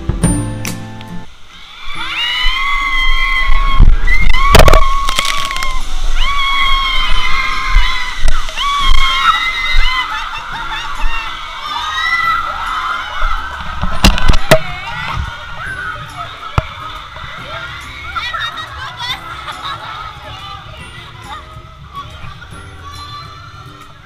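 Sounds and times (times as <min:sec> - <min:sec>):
riders screaming: 0:01.5 - 0:13.7.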